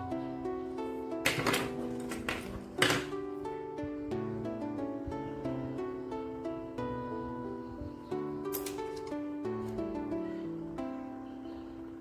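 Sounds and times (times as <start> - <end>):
plucked-string background music: 0.0 - 12.0.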